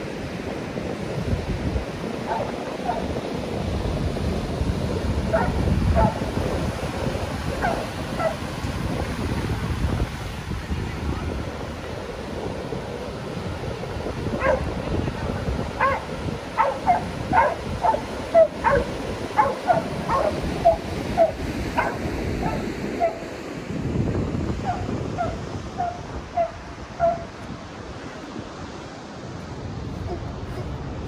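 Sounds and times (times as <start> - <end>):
waves breaking: 0.0 - 31.0
wind on the microphone: 0.0 - 31.0
dog barking: 2.2 - 3.1, 5.3 - 6.2, 7.5 - 8.4, 14.4 - 14.7, 15.8 - 23.3, 24.6 - 27.3.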